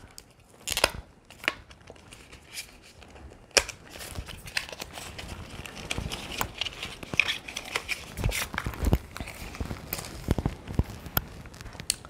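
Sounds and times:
packaging crinkling and tearing: 0.0 - 12.0.

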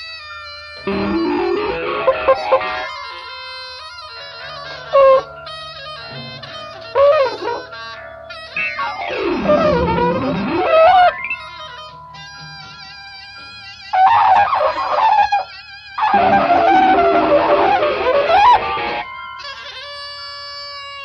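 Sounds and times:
art rock held tones: 0.8 - 3.3, 4.2 - 19.6.

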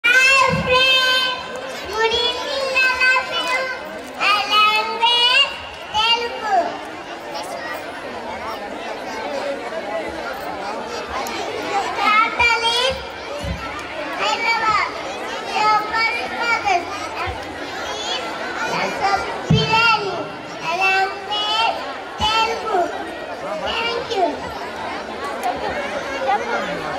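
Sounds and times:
children reciting aloud: 0.0 - 26.9.

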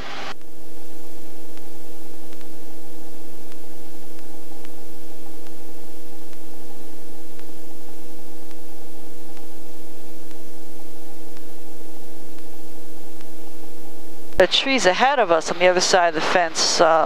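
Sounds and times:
helicopter cabin noise: 0.0 - 17.0.

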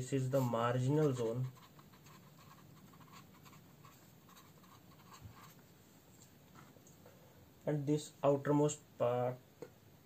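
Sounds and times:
felt-tip pen scratching on paper: 0.3 - 5.6.

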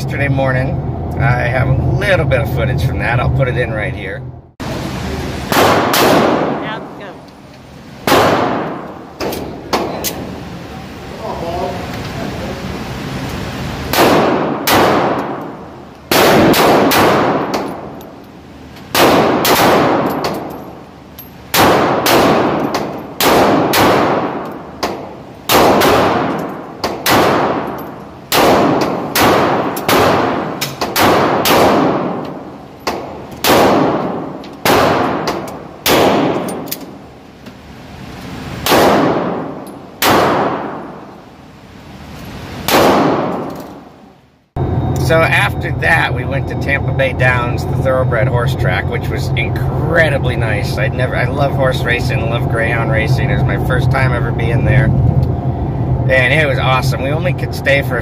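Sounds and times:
pistol shots echoing indoors: 5.5 - 7.0, 8.0 - 10.4, 13.9 - 18.2, 18.9 - 20.6, 21.4 - 37.1, 38.6 - 41.2, 42.6 - 44.1.

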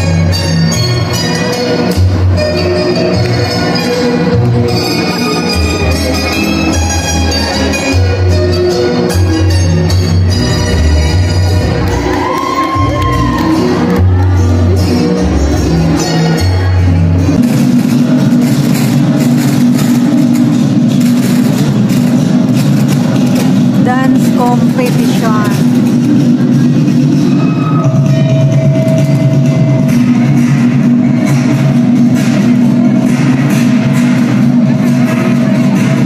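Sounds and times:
loud folk dance music: 0.0 - 36.0
audience voices: 11.1 - 28.0.

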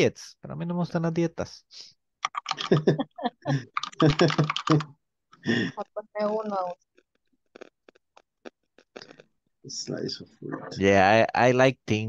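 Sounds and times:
person laughing: 2.6 - 4.8, 5.5 - 5.8.

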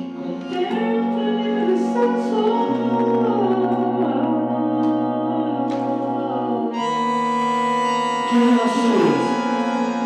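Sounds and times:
bandoneon sustained chords: 0.0 - 10.0
electric keyboard chords: 0.0 - 10.0.

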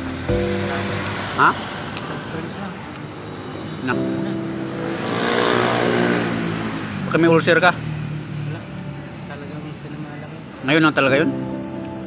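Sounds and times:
motor vehicle passing: 0.0 - 11.3.

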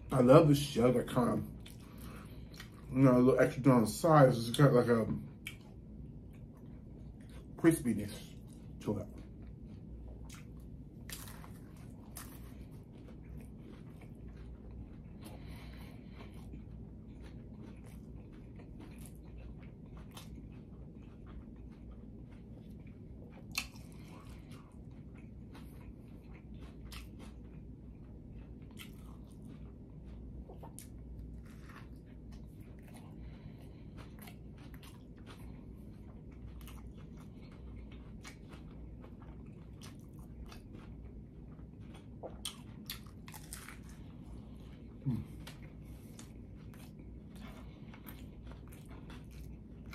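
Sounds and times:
crunchy chewing: 0.0 - 49.9
low steady hum: 0.0 - 49.9.

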